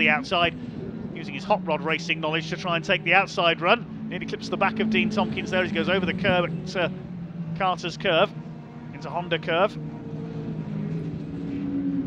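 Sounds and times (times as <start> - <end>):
racing truck engines: 0.0 - 12.0.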